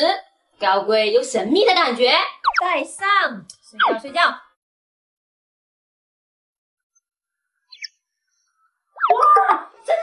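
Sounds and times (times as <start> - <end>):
woman speaking: 0.0 - 4.4
faint high chirp: 7.6 - 9.4.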